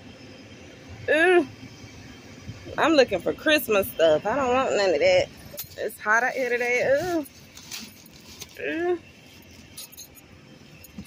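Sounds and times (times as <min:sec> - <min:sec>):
rustling of plastic trash bags: 0:05.5 - 0:10.1.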